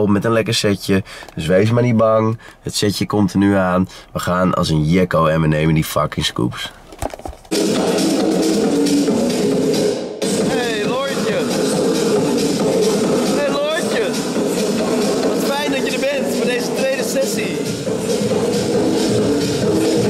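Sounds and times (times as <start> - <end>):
electronic music with beat: 7.5 - 20.0.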